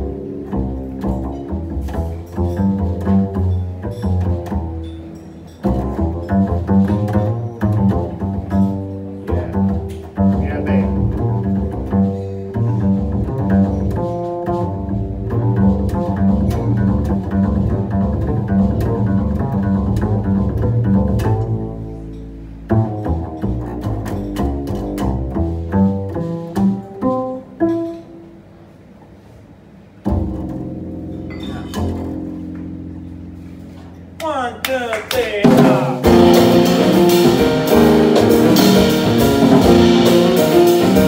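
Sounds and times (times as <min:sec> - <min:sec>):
jazz piano: 0:00.0 - 0:34.2, 0:35.4 - 0:41.0
plucked double bass: 0:00.0 - 0:34.3, 0:35.4 - 0:41.0
fast descending piano runs: 0:35.6 - 0:41.0.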